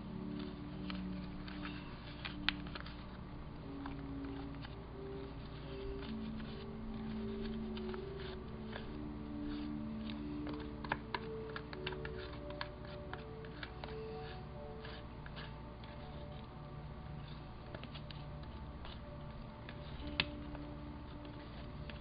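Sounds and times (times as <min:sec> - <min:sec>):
soft background music: 0:00.0 - 0:22.0.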